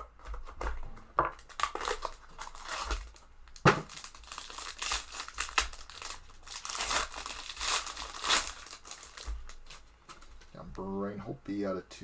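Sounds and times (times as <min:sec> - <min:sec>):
foil wrapper crinkling: 0:01.3 - 0:10.5.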